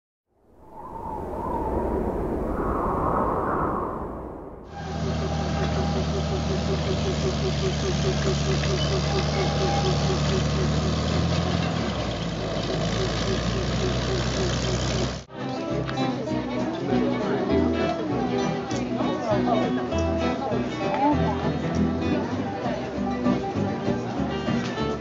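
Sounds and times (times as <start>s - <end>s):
noisier rumbling sound: 0.4s - 15.3s
train engine humming: 4.7s - 15.3s.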